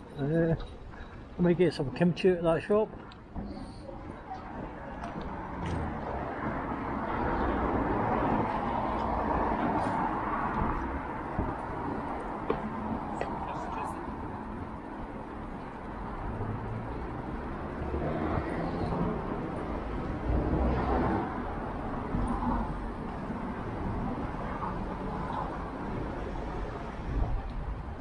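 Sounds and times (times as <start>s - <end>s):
traffic: 0.0s - 28.0s
tyre and wind rumble: 2.8s - 28.0s.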